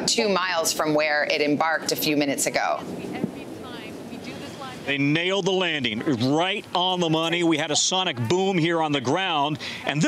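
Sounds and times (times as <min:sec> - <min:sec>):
faint distant voices: 0:00.0 - 0:10.0
man speaking: 0:04.6 - 0:10.0.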